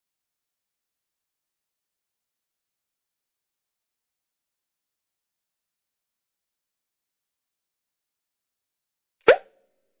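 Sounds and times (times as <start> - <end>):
sharp pop: 9.2 - 9.6.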